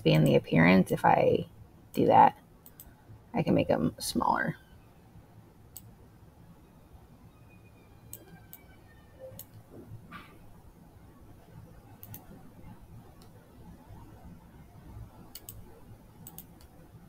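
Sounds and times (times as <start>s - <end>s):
low room hiss: 0.0s - 17.0s
computer mouse clicks: 2.6s - 3.0s, 5.7s - 5.9s, 8.1s - 8.6s, 9.4s - 9.6s, 12.0s - 12.4s, 15.2s - 16.8s.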